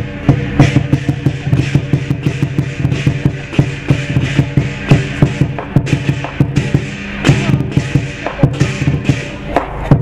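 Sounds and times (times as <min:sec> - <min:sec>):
cymbals: 0:00.0 - 0:10.0
large drum beating fast: 0:00.0 - 0:10.0
gong ringing: 0:01.6 - 0:09.4.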